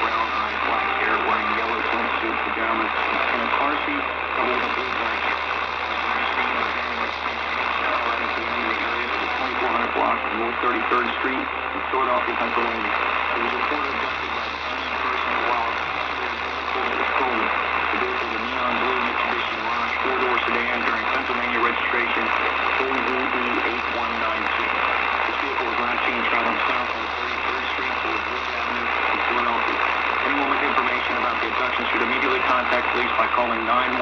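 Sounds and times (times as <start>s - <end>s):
low hum: 0.0s - 34.0s
muffled radio voice: 0.0s - 34.0s
static hiss: 0.0s - 34.0s.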